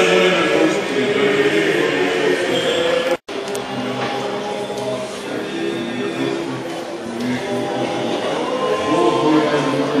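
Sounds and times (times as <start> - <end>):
voices singing liturgical chant: 0.0 - 10.0.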